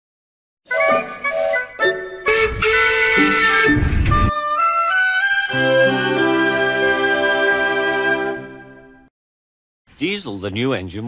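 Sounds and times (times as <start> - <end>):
wind instrument melody: 0.7 - 9.1.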